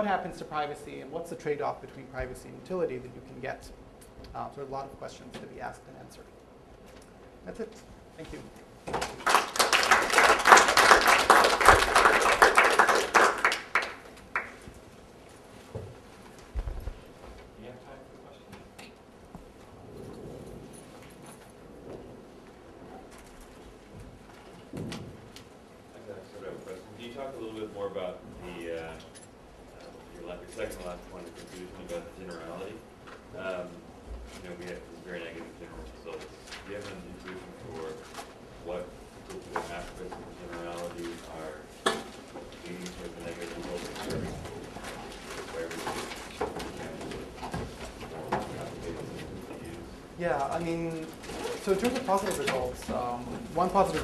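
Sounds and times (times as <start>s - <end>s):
low thuds: 16.5s - 17.2s
person asking a question: 50.2s - 54.0s.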